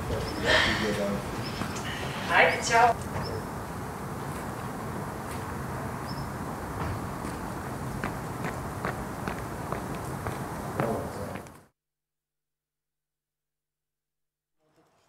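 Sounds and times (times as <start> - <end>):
outdoor background hiss: 0.0 - 11.7
footsteps on paving: 6.8 - 11.6.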